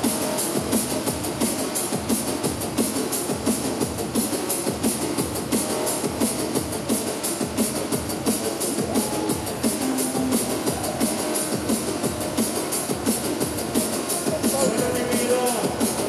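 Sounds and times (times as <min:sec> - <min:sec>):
drum and bass music: 0:00.0 - 0:16.0.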